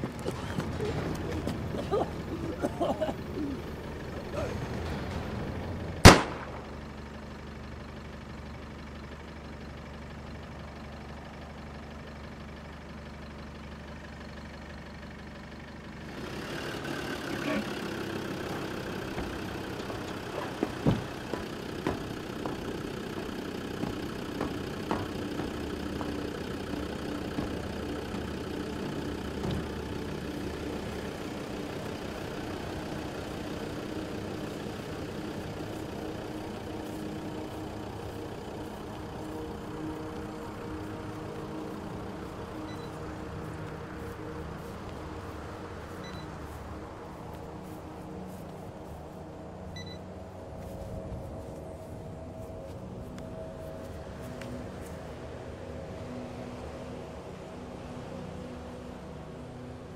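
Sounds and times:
low steady drone: 0.0s - 59.9s
vehicle engine idling: 0.0s - 59.9s
rifle shot: 6.0s - 6.7s
scattered knocks: 18.3s - 30.6s.

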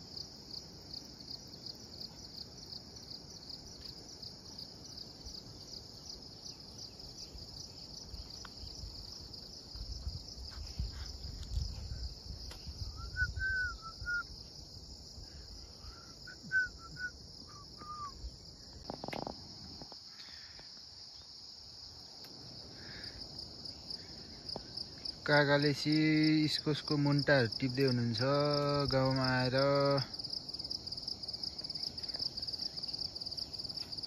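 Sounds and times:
insect chorus drone: 0.0s - 34.0s.

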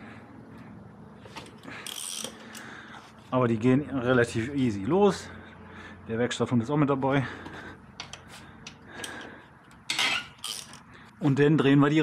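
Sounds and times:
ratchet clinking and rattling: 1.8s - 2.7s, 9.8s - 10.9s.

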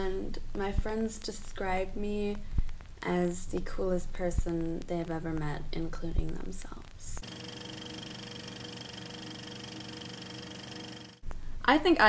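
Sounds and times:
buzzing drone of held tones: 7.1s - 11.3s.

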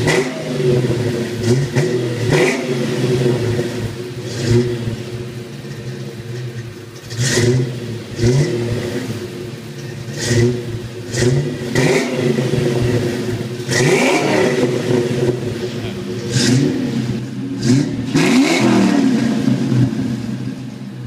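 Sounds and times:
car engine idling and revving: 0.0s - 21.0s.

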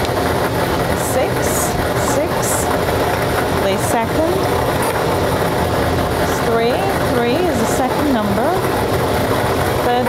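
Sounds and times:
lottery machine air blowers: 0.0s - 10.0s.

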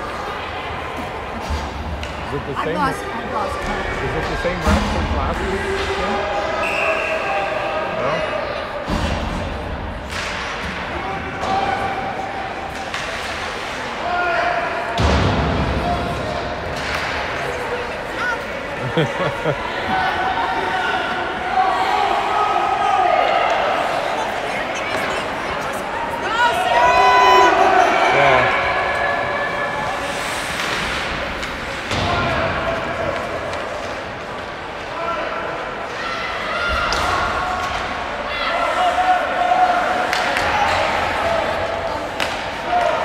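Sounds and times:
hockey sticks and puck clacking: 8.9s - 14.2s, 15.0s - 18.5s, 23.3s - 25.9s, 29.6s - 39.0s, 39.6s - 43.0s.

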